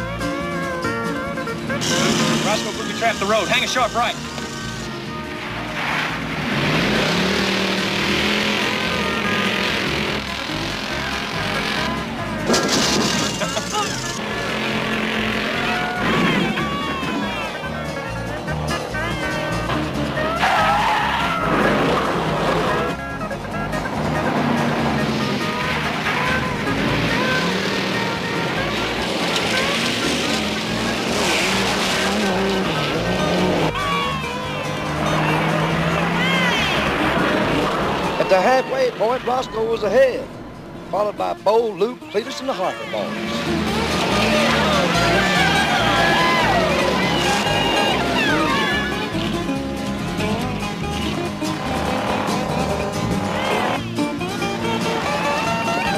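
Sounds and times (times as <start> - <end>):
tires skidding: 0.0 - 41.7, 42.3 - 55.9
car engines revving: 0.0 - 55.9.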